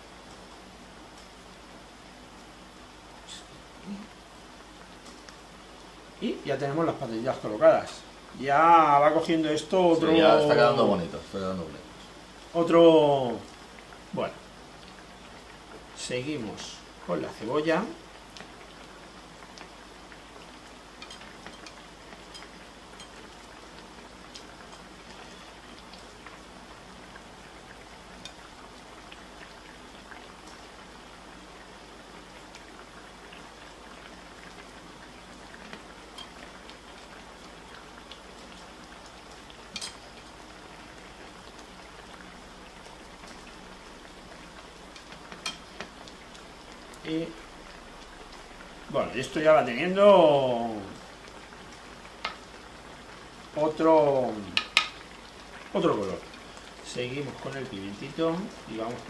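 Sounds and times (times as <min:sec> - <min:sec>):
broth bubbling in a pan: 0:00.0 - 0:59.0.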